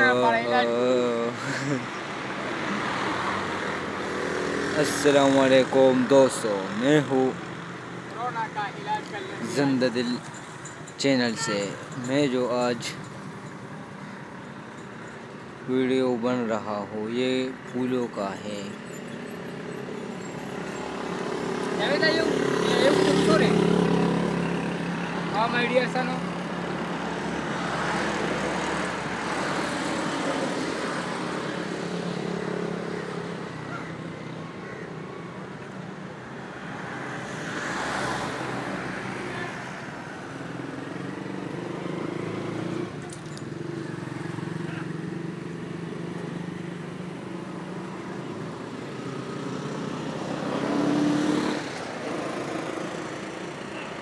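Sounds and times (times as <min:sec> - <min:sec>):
road traffic noise: 0:00.0 - 0:54.0
vehicle passing close by: 0:48.4 - 0:53.4.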